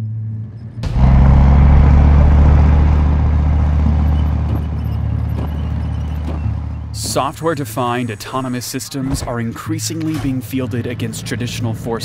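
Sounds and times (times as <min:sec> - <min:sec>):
tracked vehicle rumbling by: 0:00.1 - 0:07.7.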